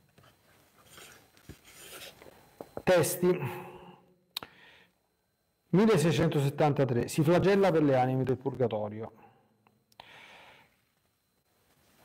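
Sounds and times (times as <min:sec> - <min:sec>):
book pages rustling: 0:00.2 - 0:02.4
man speaking: 0:02.8 - 0:04.0, 0:05.7 - 0:09.3.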